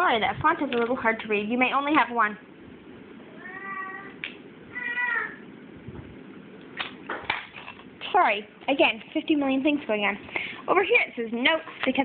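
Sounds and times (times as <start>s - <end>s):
baby crying: 3.3s - 5.4s.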